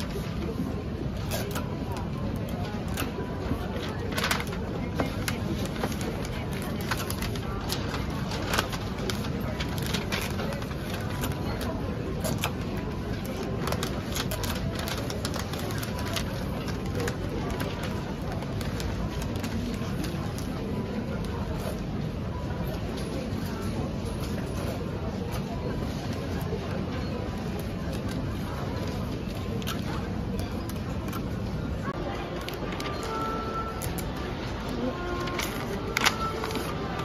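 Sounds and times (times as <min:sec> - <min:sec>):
background murmur: 0:00.0 - 0:37.0
wrapping paper crinkling: 0:02.8 - 0:20.6, 0:32.4 - 0:37.0.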